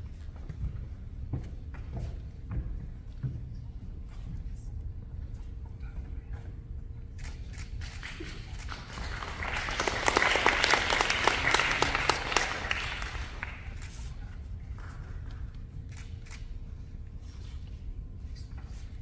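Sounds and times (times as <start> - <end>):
audience applauding: 8.0 - 13.8.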